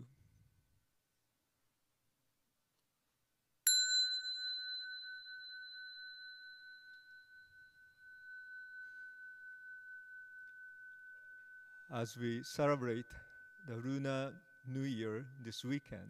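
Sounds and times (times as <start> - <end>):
bowl bell ringing: 3.7 - 16.0.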